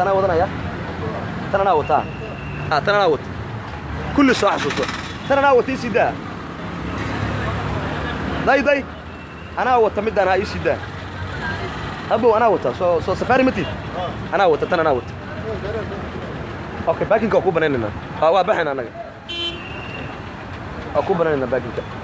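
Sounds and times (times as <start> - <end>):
voices calling out: 0.0 - 22.0.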